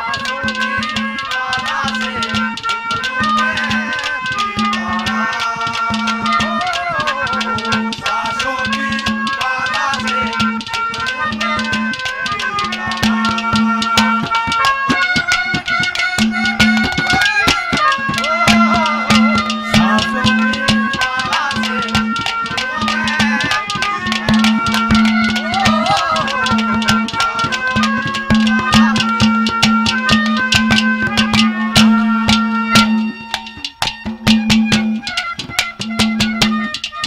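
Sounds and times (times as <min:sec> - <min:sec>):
held drone note: 0:00.0 - 0:33.6
fast hand drum strokes: 0:00.0 - 0:37.0
reedy melody: 0:00.0 - 0:37.0.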